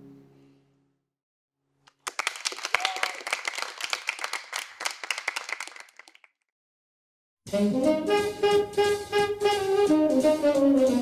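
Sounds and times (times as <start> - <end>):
crowd applause: 1.9 - 6.3.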